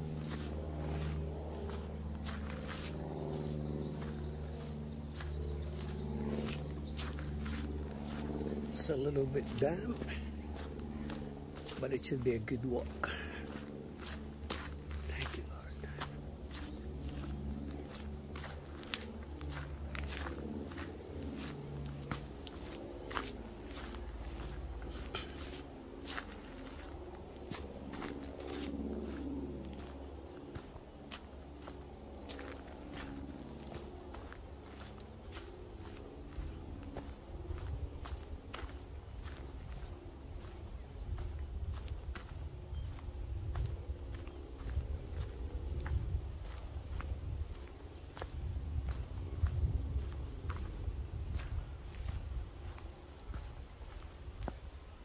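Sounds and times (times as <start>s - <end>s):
footsteps on dirt track: 0.0s - 55.0s.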